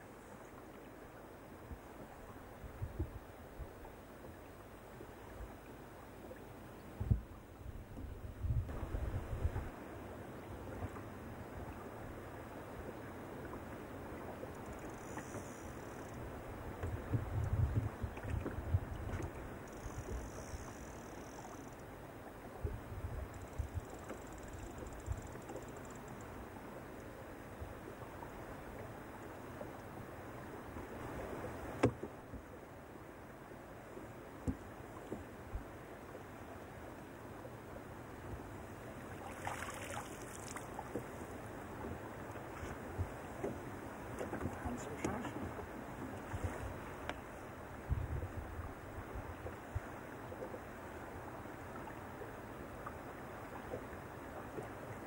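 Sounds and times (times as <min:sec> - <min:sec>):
small waves lapping against boat hull: 0:00.0 - 0:55.0
wind: 0:00.0 - 0:55.0
wind buffeting microphone: 0:07.0 - 0:09.7, 0:16.8 - 0:19.5, 0:47.7 - 0:49.9.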